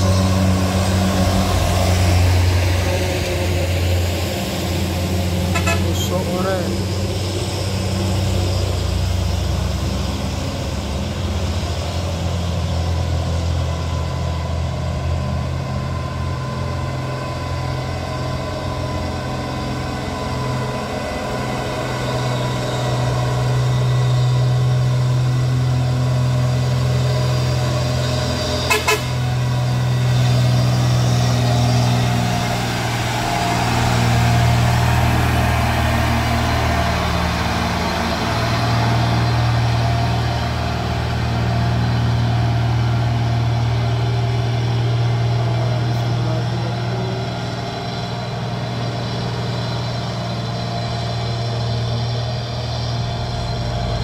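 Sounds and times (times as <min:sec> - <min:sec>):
truck diesel engine climbing: 0:00.0 - 0:54.0
horn toots: 0:05.4 - 0:06.3, 0:28.6 - 0:29.5.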